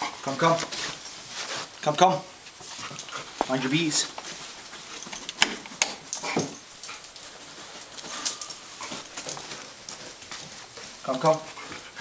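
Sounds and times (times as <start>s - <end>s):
dog sniffing: 0.0s - 1.8s.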